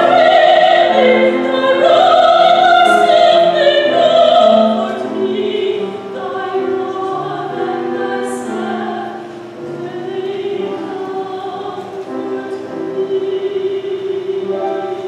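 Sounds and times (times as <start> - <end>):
church choir singing: 0.0 - 15.0.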